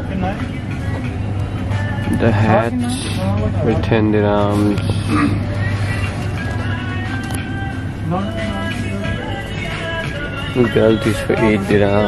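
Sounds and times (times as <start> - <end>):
music: 0.0 - 12.0
steady low rumble: 0.0 - 12.0.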